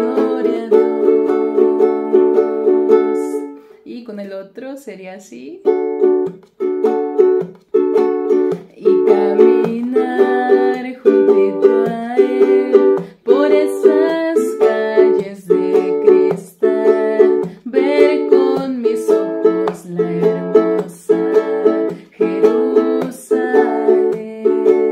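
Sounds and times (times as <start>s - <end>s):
ukulele strumming chords: 0.0s - 3.7s, 5.6s - 24.9s.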